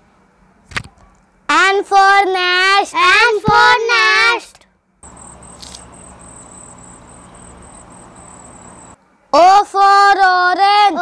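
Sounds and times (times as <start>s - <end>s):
insect chirping: 5.0s - 9.0s
faint low outdoor hum: 5.0s - 9.2s
brief high rustle: 5.5s - 5.9s.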